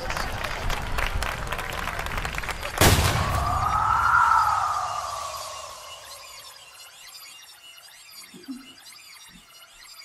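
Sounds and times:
sudden boom: 0:02.8 - 0:04.2
rising and falling pitched tone: 0:03.4 - 0:07.6.

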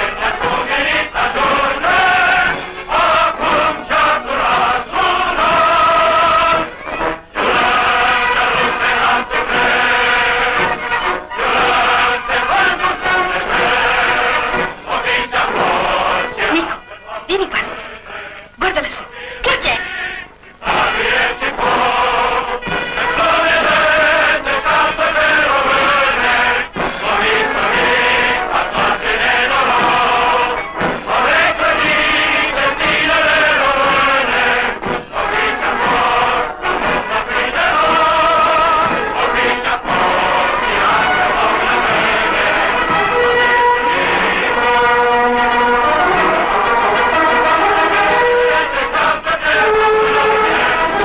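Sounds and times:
choir singing chant-like phrases: 0:00.0 - 0:51.0.

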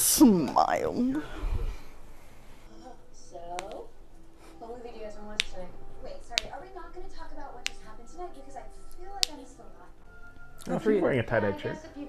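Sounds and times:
knuckles cracking: 0:03.4 - 0:04.6, 0:05.2 - 0:09.8.

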